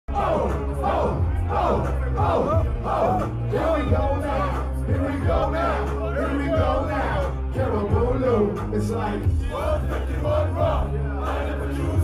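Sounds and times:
deep bass beat: 0:00.0 - 0:12.0
crowd shouting and chanting: 0:00.1 - 0:12.0.

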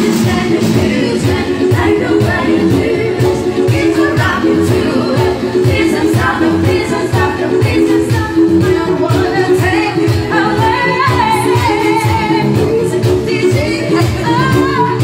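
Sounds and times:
amplified music with steady beat: 0:00.0 - 0:15.0
women singing pop song: 0:00.0 - 0:15.0.

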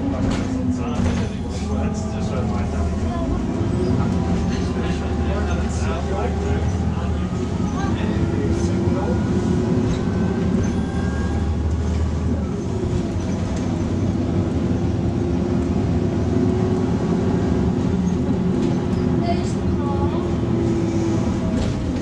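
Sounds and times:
bus diesel engine drone: 0:00.0 - 0:22.0
road noise: 0:00.0 - 0:22.0.

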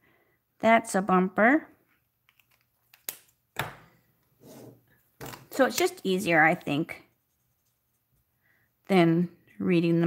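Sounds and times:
soft rub on desk: 0:04.4 - 0:04.8, 0:06.2 - 0:08.4.

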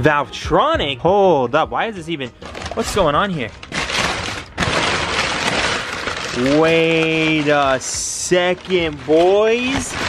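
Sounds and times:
packing paper rustling: 0:02.2 - 0:10.0.

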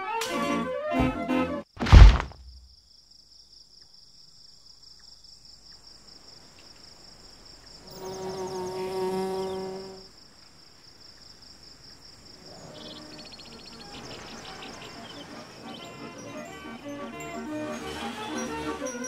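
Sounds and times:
crickets chirring: 0:01.9 - 0:19.0.

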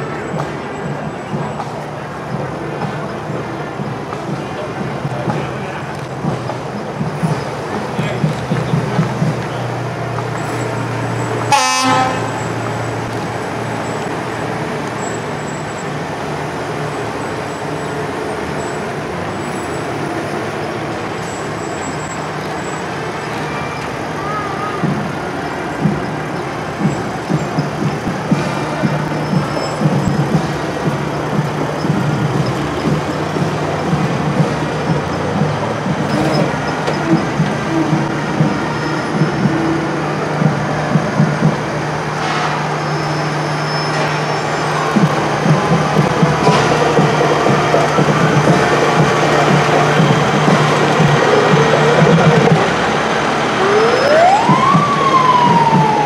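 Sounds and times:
low engine drone: 0:00.0 - 0:56.0
rough uneven engine noise: 0:00.0 - 0:56.0
fire truck horn blast: 0:11.4 - 0:12.6.

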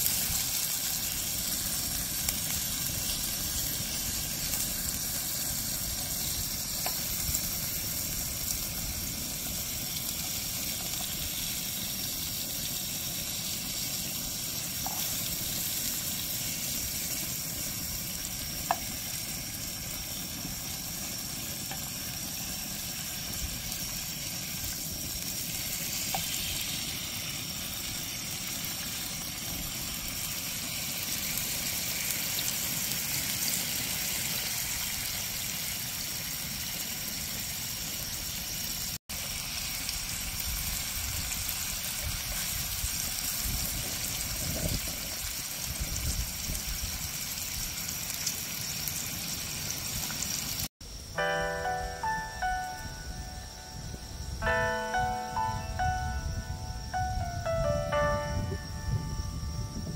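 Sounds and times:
meat sizzling in frying pan: 0:00.0 - 0:50.7.

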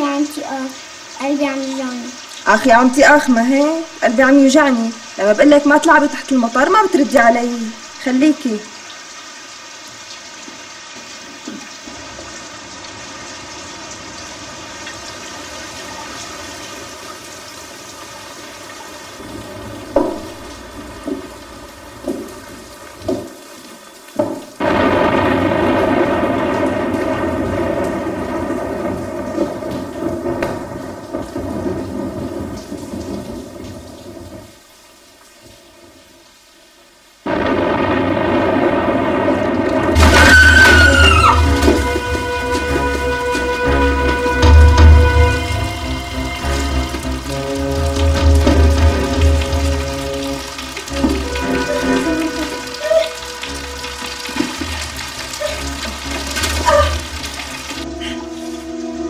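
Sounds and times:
rain falling: 0:00.0 - 0:59.0
sharp thunder cracks: 0:24.6 - 0:34.5, 0:37.2 - 0:58.1.

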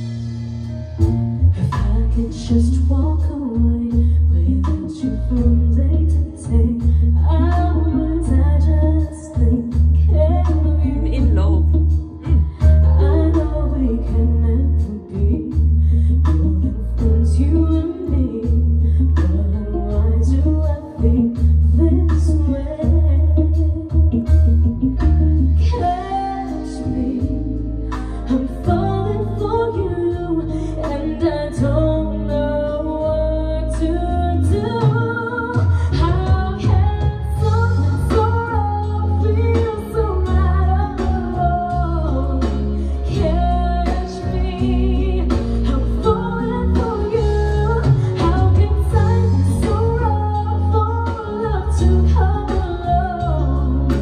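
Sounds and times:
band playing pop song: 0:00.0 - 0:54.0
woman singing: 0:01.0 - 0:54.0.

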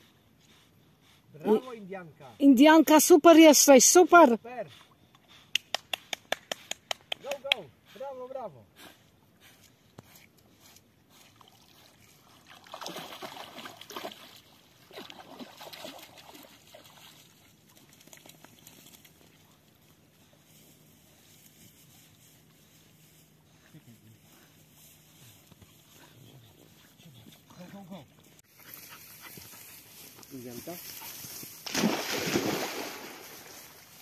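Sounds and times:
water sloshing: 0:11.4 - 0:19.4, 0:31.2 - 0:34.0.

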